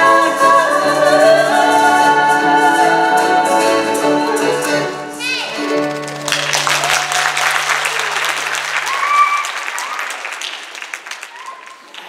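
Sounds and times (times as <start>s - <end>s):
audience applause: 5.6s - 12.0s.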